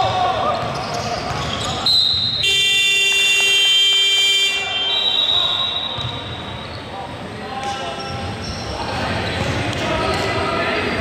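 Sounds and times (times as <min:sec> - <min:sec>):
scoreboard buzzer: 0:02.4 - 0:04.9.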